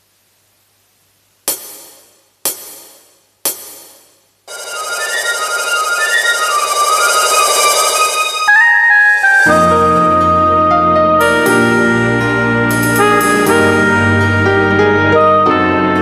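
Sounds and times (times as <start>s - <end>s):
instrumental backing track: 1.5s - 16.0s.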